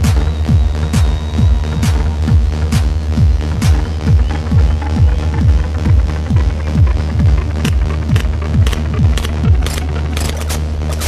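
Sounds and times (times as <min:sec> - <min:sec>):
deep kick drum: 0:00.0 - 0:09.9
steady bass drone: 0:00.0 - 0:11.0
techno music: 0:00.0 - 0:11.0.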